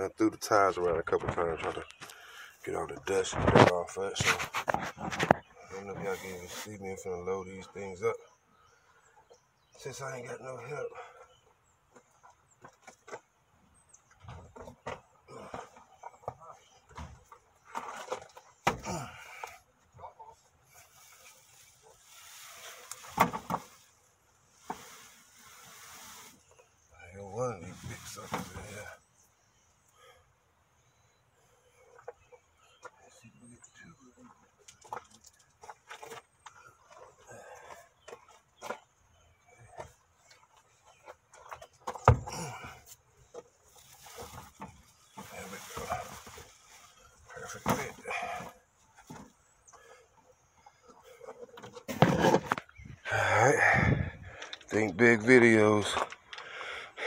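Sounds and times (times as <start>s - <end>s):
wheels scraping and knocking: 50.7s - 52.9s.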